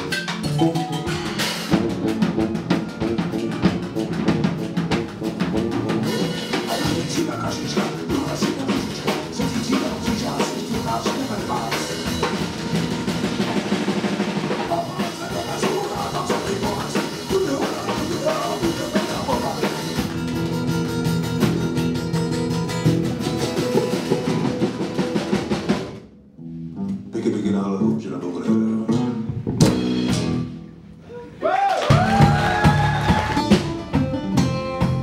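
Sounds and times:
bass drum and snare: 0.0s - 26.1s, 29.3s - 30.6s, 31.9s - 35.0s
live band music: 0.0s - 31.3s, 31.9s - 35.0s.

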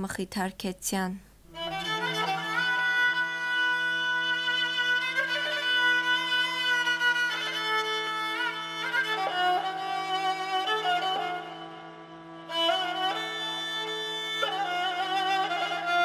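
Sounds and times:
bowed string melody: 1.5s - 16.0s.

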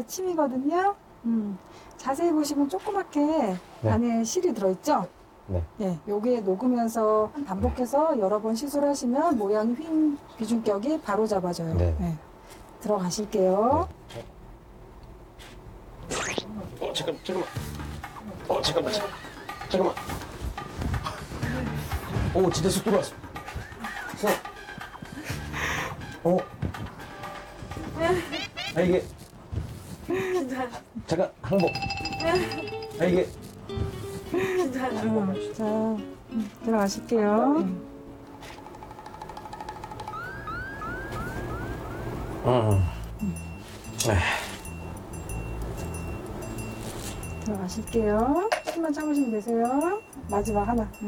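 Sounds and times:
wavering tone: 38.7s - 49.4s
short rising whistles: 40.1s - 42.5s.

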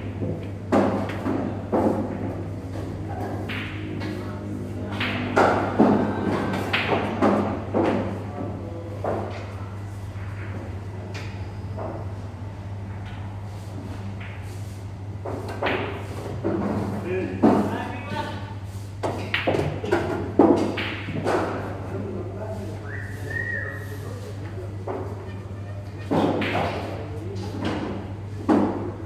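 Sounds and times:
steady low hum: 0.0s - 29.0s
pool balls clacking: 5.0s - 9.5s, 19.0s - 21.7s, 24.8s - 29.0s.

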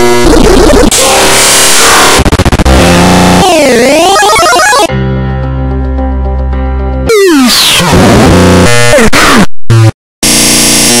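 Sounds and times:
harsh steady-toned blast: 0.0s - 3.8s.

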